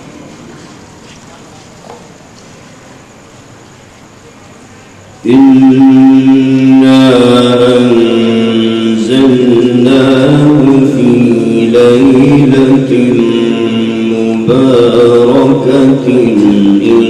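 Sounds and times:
man chanting melodically: 5.2s - 17.0s.

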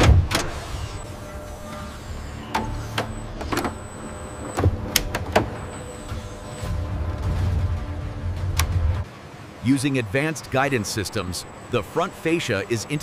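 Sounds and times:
robot arm motors whirring: 0.0s - 6.9s
low hum: 0.0s - 9.6s
thin high whine: 5.6s - 7.0s.

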